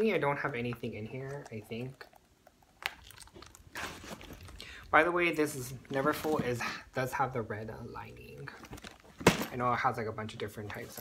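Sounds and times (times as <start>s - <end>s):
canvas pouch rustling and crinkling: 2.8s - 4.6s.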